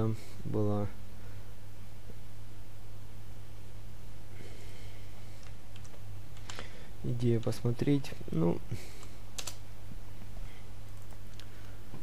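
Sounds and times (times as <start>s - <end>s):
steady low hum: 0.0s - 12.0s
computer keyboard keystrokes: 5.4s - 6.6s, 9.4s - 9.6s.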